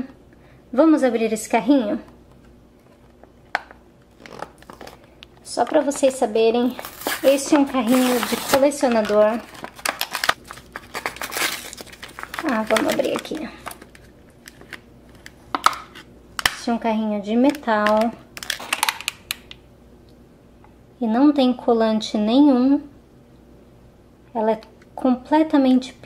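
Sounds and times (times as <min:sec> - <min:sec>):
plastic packaging rustling: 0:04.0 - 0:16.0, 0:17.5 - 0:19.3.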